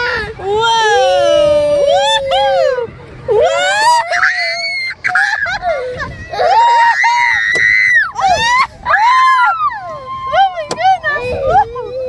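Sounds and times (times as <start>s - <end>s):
children screaming: 0.0s - 12.0s.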